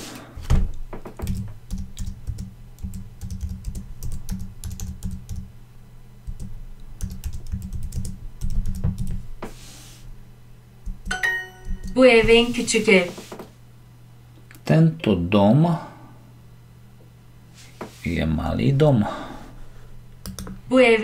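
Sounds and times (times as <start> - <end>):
keyboard typing: 1.2 - 5.5, 6.3 - 9.2, 10.9 - 12.0, 20.2 - 20.6
bright tone chime: 11.1 - 12.0.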